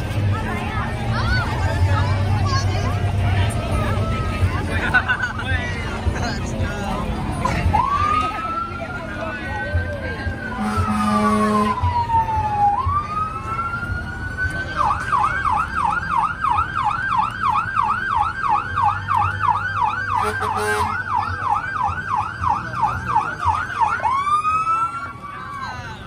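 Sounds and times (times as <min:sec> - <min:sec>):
short horn blast: 0:10.5 - 0:11.8.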